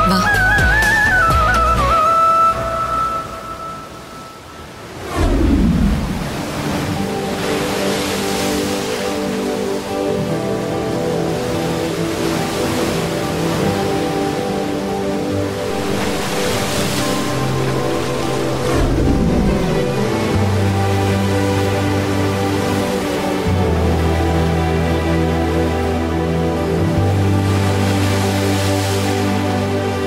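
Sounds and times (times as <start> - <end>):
sea waves breaking: 1.9 - 30.0
falling swoosh: 5.0 - 7.0
sustained held chords: 5.8 - 30.0.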